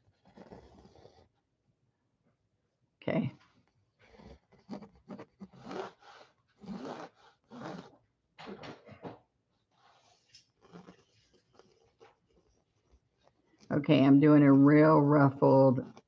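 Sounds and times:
pencil scratching on canvas: 0.0s - 1.4s, 4.0s - 8.0s, 9.7s - 13.7s, 15.8s - 16.0s.

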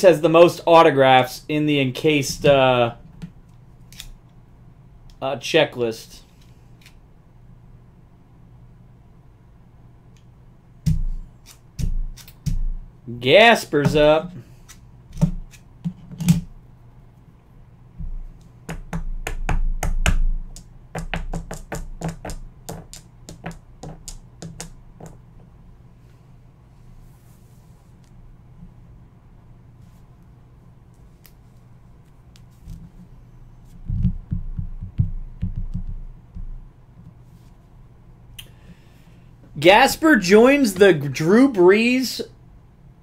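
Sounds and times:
dull low thumps on tabletop: 33.8s - 36.6s.

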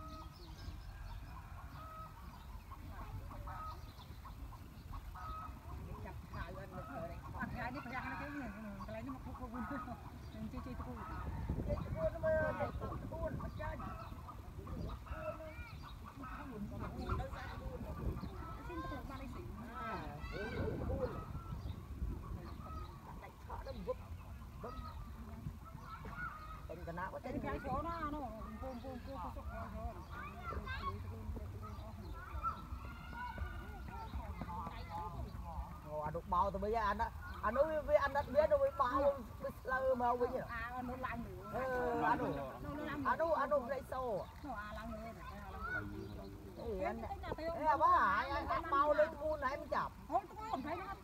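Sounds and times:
chickens clucking: 0.0s - 40.3s
fowl honking: 4.9s - 6.1s, 6.7s - 21.6s.

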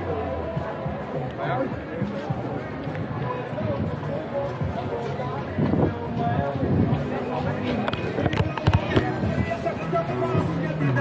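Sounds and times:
music playing: 0.0s - 11.0s
people talking: 0.0s - 11.0s.

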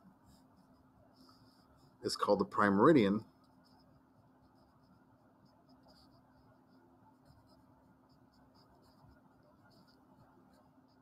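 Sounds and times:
marker writing on paper: 0.3s - 11.0s.

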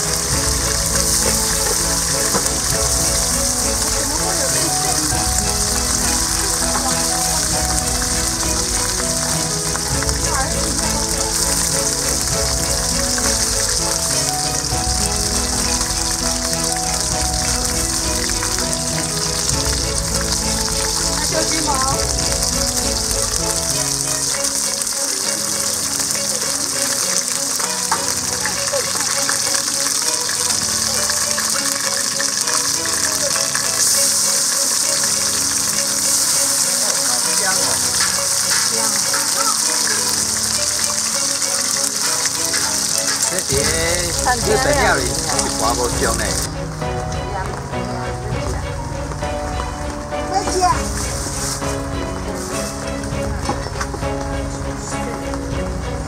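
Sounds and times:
shrimp sizzling in hot oil: 0.0s - 55.6s.

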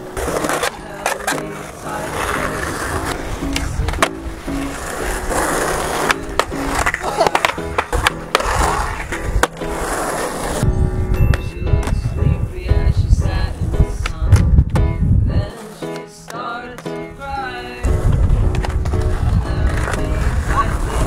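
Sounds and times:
background music: 0.0s - 21.0s
skateboard wheels rolling on concrete: 0.0s - 21.0s
skateboard clacks popping and landing: 3.1s - 4.3s, 5.6s - 10.6s, 18.0s - 20.9s.

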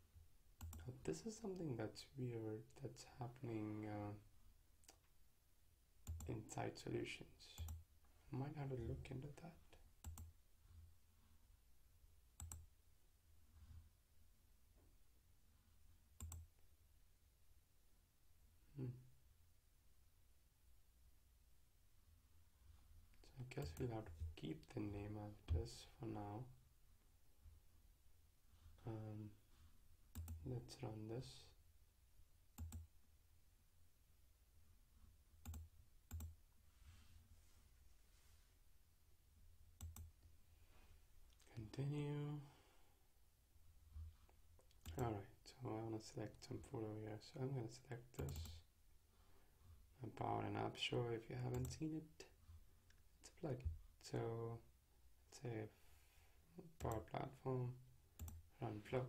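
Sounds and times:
computer mouse clicks: 12.4s - 12.6s, 16.2s - 16.4s, 30.1s - 30.4s, 32.6s - 32.8s, 35.4s - 36.3s, 39.8s - 40.1s, 48.2s - 48.5s.

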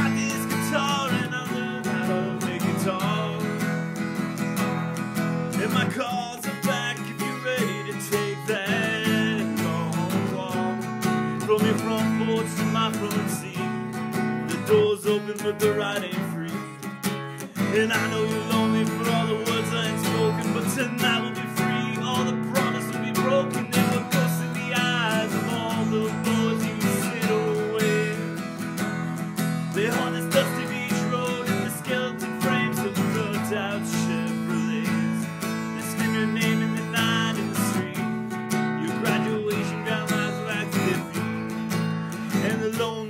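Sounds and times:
person singing: 0.0s - 3.9s, 4.7s - 43.0s
acoustic guitar strumming: 0.0s - 43.0s.

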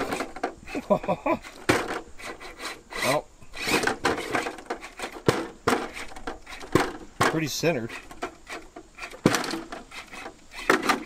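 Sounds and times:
toy truck knocking down steps: 0.0s - 0.7s, 1.4s - 11.0s
tyres scraping on wood: 0.0s - 11.0s.

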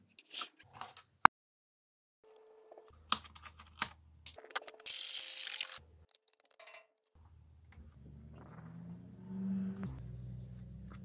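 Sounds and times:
metal parts clicking and rattling: 4.3s - 7.0s.

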